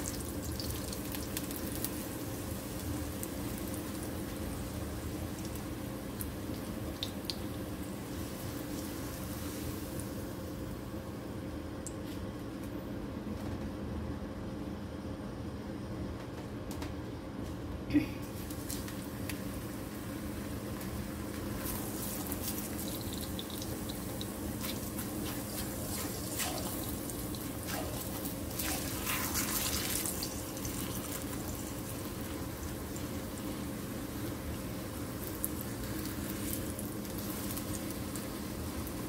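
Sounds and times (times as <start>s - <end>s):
tortilla sizzling in hot oil: 0.0s - 10.8s, 18.4s - 39.0s.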